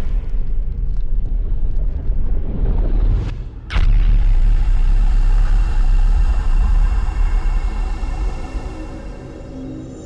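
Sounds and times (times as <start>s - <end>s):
loud deep rumble: 0.5s - 9.6s.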